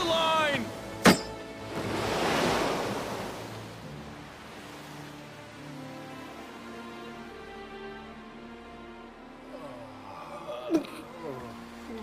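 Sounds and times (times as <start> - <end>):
surging sea water: 0.0 - 12.0.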